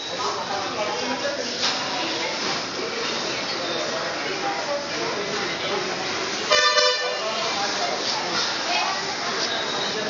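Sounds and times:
murmur of people talking: 0.0s - 10.0s
vehicle horn honking: 6.5s - 7.3s.

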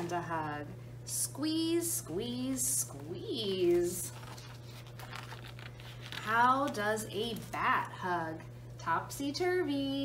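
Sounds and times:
paper page turning: 2.5s - 7.6s.

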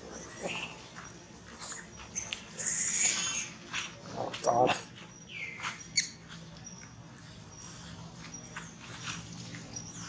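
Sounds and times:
faint rustles: 0.0s - 10.0s.

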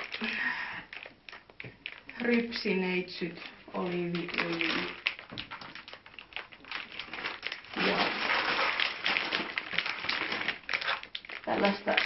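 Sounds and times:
shopping bag rustling and crinkling: 0.0s - 12.0s.

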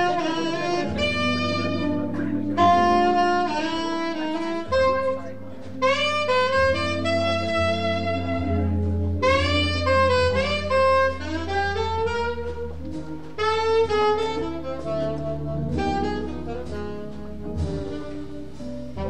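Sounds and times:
alto saxophone jazz melody: 0.0s - 19.0s
jazz band: 0.0s - 19.0s
low organ notes: 0.0s - 19.0s.

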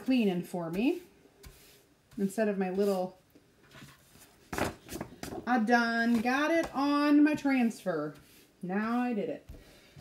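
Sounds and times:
paintbrush rustle: 0.1s - 4.5s, 7.4s - 9.3s.

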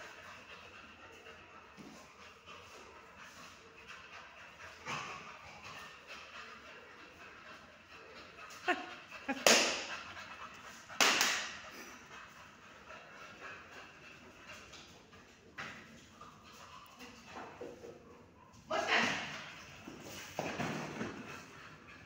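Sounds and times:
dog panting: 0.0s - 22.0s.

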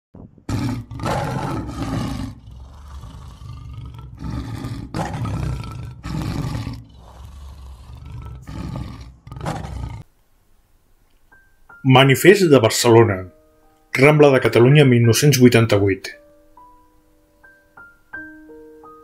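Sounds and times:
big cat roaring: 0.5s - 10.1s.

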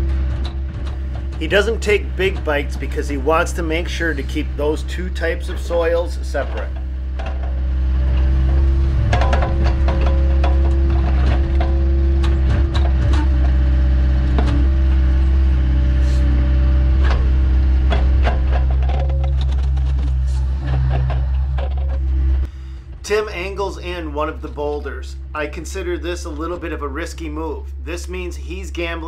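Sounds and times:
grapple clicking and knocking boulders: 0.0s - 15.9s, 16.6s - 22.4s
excavator engine and hydraulics: 0.0s - 29.0s.

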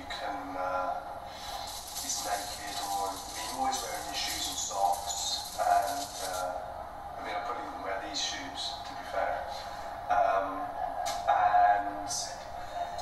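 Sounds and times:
faint music: 0.0s - 13.0s
hiss of noise: 1.2s - 6.6s
indistinct speaking voices: 1.6s - 13.0s.

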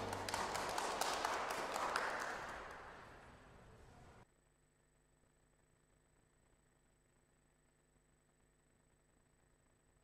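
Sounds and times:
congregation clapping in church: 0.0s - 4.1s.

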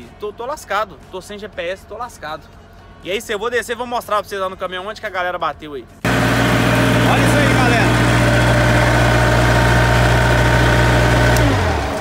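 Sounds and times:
diesel engine running: 6.1s - 12.0s.

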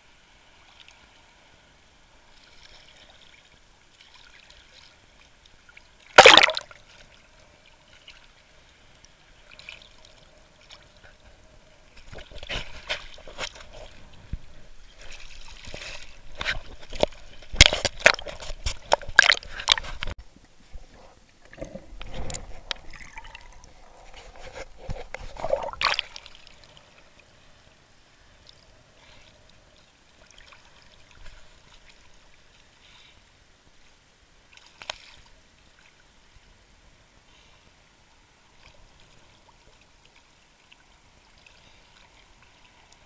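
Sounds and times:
muffled water splashing: 2.1s - 32.8s.

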